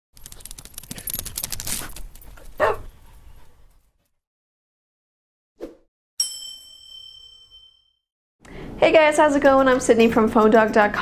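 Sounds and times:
dog barking: 0:02.6 - 0:02.9.

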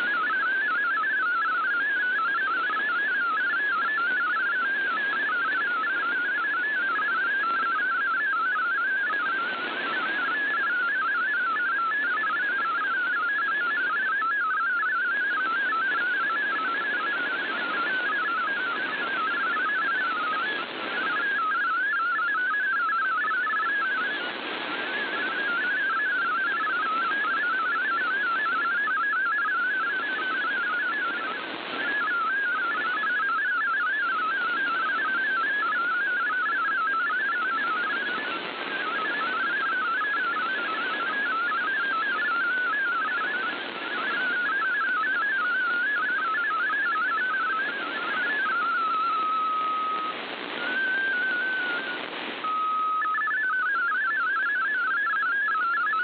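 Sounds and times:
warbling digital radio tones: 0:00.0 - 0:56.0
radio band hiss: 0:20.2 - 0:21.4, 0:30.0 - 0:32.9, 0:37.5 - 0:42.2, 0:42.8 - 0:53.0.

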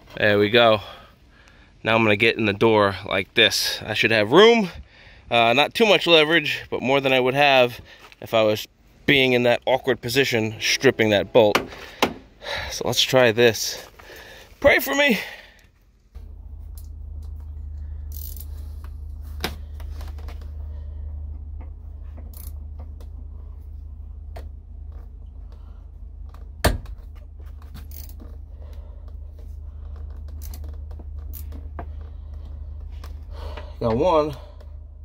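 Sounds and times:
low rumble: 0:08.6 - 0:14.7, 0:15.4 - 0:35.0
metallic wrench clicks: 0:18.1 - 0:18.5.

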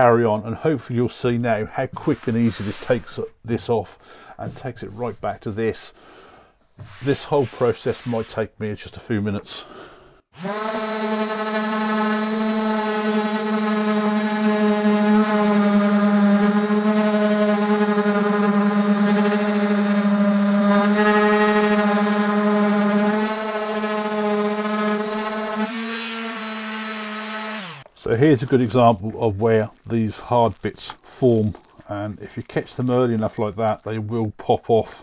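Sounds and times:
orbital sander running: 0:10.4 - 0:27.9.

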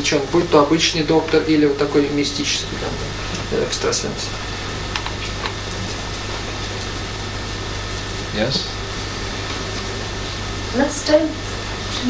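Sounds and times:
low electrical hum and hiss: 0:00.0 - 0:12.0.

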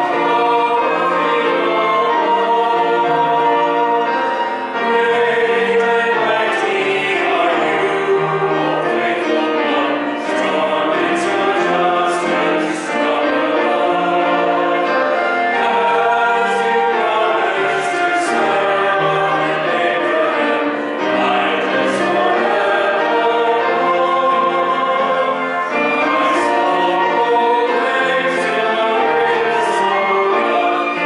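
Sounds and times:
group singing a hymn: 0:00.0 - 0:31.0
piano accompaniment: 0:00.0 - 0:31.0.

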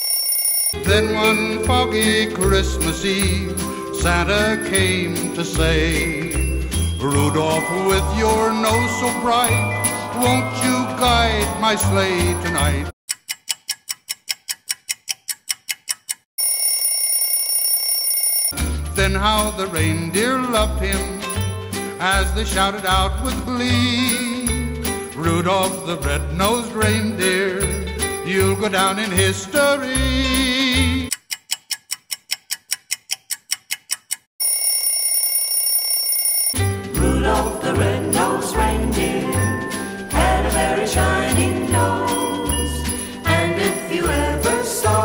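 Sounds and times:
bell-like ringing: 0:00.0 - 0:12.9, 0:16.4 - 0:21.8, 0:34.4 - 0:45.0
clock ticking: 0:00.7 - 0:16.3, 0:28.4 - 0:34.3
dance song: 0:03.2 - 0:12.9, 0:37.0 - 0:45.0
rapid timer ticking: 0:12.2 - 0:16.3, 0:28.3 - 0:34.3.

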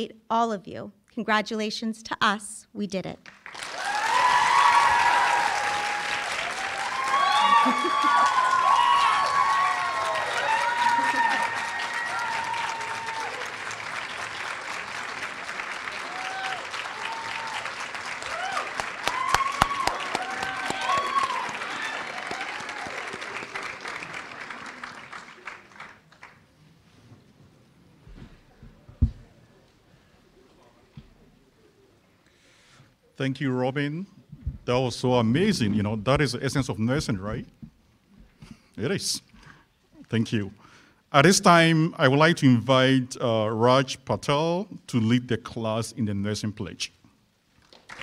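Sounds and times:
audience applauding: 0:03.3 - 0:26.6, 0:47.6 - 0:48.0
voices whooping: 0:03.7 - 0:13.5, 0:16.0 - 0:23.3.

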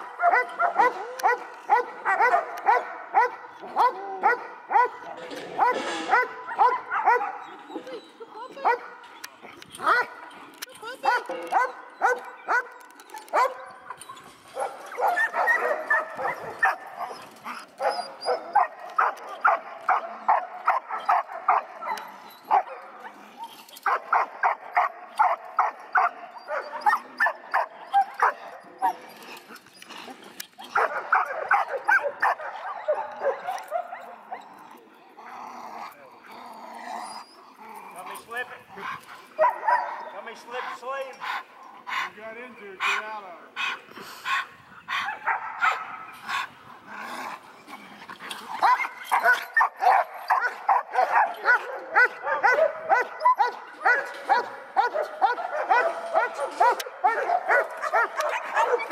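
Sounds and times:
dog barking rapidly: 0:00.2 - 0:03.4, 0:48.6 - 0:58.9.

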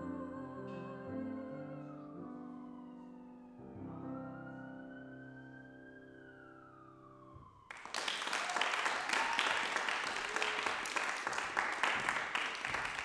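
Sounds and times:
audience applause: 0:07.7 - 0:13.0.

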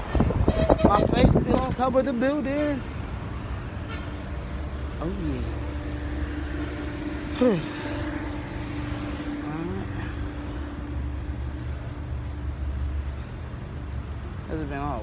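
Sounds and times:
vehicle engine running: 0:04.4 - 0:15.0.

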